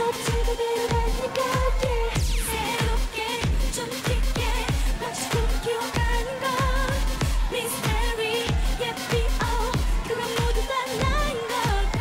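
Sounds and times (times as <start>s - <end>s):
female voices singing: 0.0s - 12.0s
punchy kick-drum beat: 0.0s - 12.0s.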